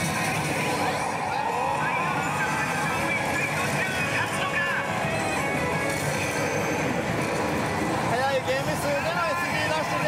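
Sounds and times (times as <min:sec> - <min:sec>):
slot machines din: 0:00.0 - 0:10.0.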